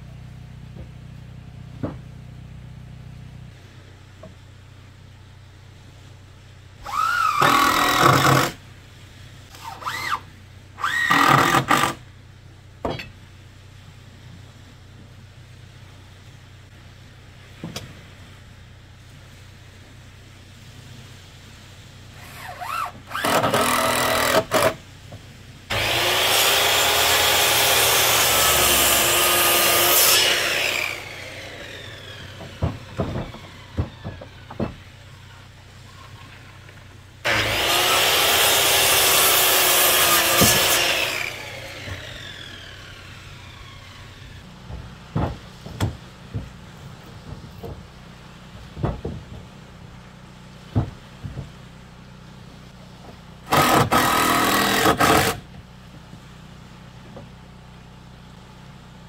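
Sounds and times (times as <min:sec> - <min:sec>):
circular saw cutting wood: 0:06.8 - 0:08.6, 0:09.5 - 0:12.0, 0:22.2 - 0:24.8, 0:25.7 - 0:34.7, 0:37.2 - 0:44.5, 0:53.5 - 0:55.5
wood knocking: 0:32.1 - 0:34.8, 0:44.6 - 0:47.9, 0:48.6 - 0:49.5.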